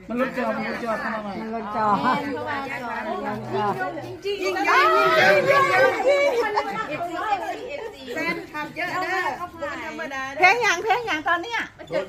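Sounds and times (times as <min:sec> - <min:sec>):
overlapping chatter of people: 0:00.0 - 0:12.0.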